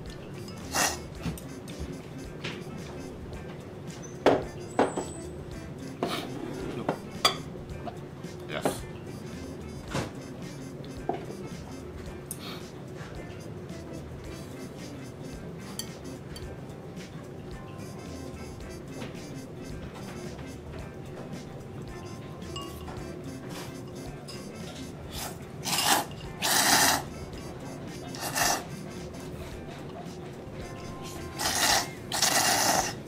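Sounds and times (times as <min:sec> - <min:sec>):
background music: 0:00.0 - 0:33.0
ceramic bowl clink: 0:07.2 - 0:07.5, 0:15.8 - 0:16.5, 0:22.4 - 0:23.1
noodles slurped loudly: 0:25.2 - 0:27.0.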